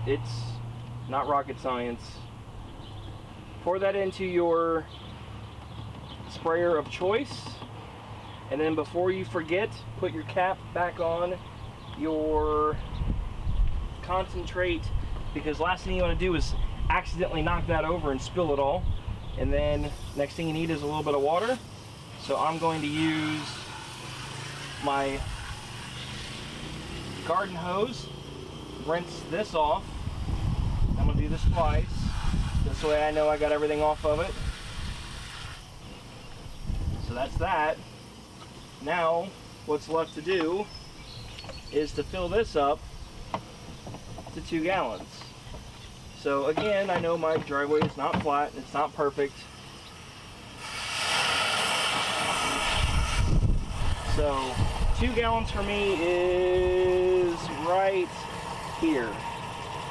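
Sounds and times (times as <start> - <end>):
hose water pouring into plastic tank: 19.8 - 28.0, 31.0 - 35.6, 50.6 - 59.9.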